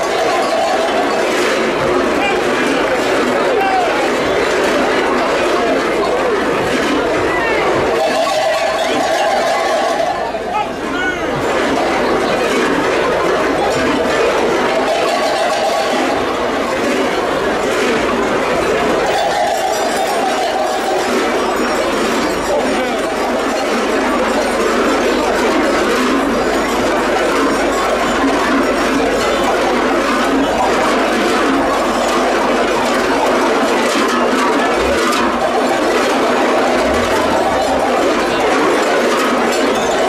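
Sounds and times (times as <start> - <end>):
cattle bells clanging: 0.0 - 40.0.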